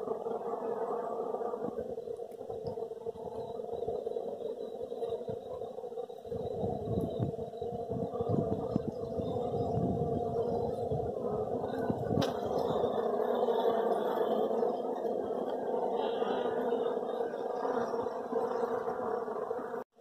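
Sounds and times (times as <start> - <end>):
honeybees buzzing: 0.0 - 20.0.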